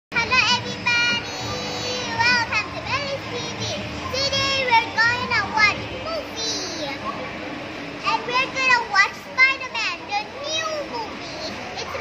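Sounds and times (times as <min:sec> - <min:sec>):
faint background hum: 0:00.1 - 0:12.0.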